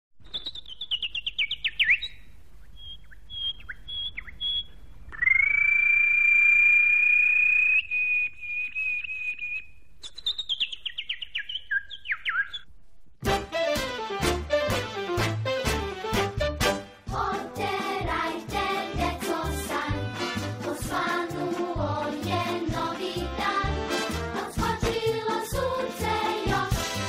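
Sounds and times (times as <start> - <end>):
songbird singing: 0.2 - 12.7
upbeat music: 13.2 - 27.0.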